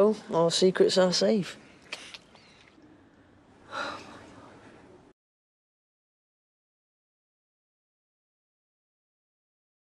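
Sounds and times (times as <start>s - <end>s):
person gasping: 3.7s - 4.4s.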